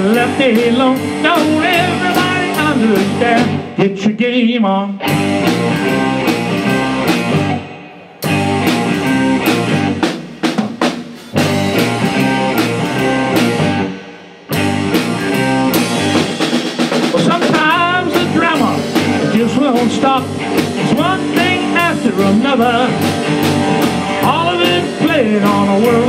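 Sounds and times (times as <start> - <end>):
blues-rock band playing: 0.0 - 3.9, 5.0 - 26.0
band hard hits: 5.1 - 26.0.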